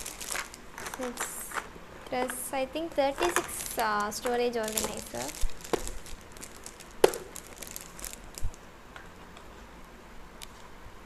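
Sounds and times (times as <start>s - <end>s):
plastic wrap crinkling: 0.0s - 8.7s.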